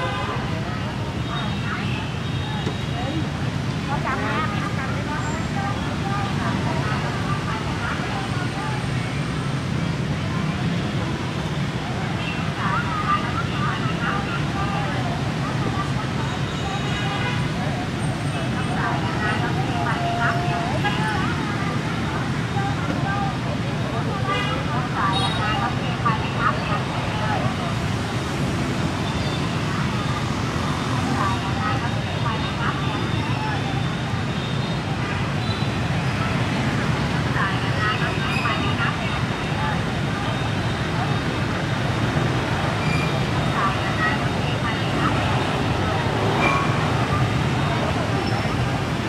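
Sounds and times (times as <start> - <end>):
people chatting: 0.0 - 9.4, 10.1 - 49.0
motorbike traffic hum: 0.0 - 49.0.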